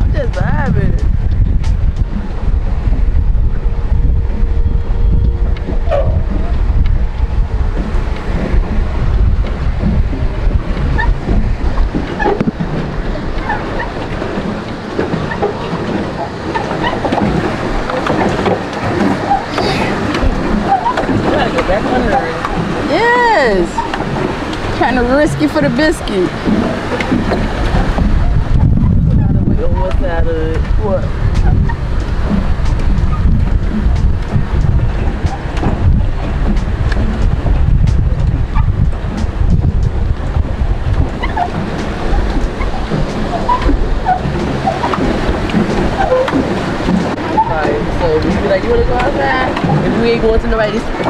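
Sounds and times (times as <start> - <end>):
water lapping and churning: 0.0 - 51.0
wind rumbling on microphone: 0.0 - 51.0
indistinct voices: 24.7 - 26.4.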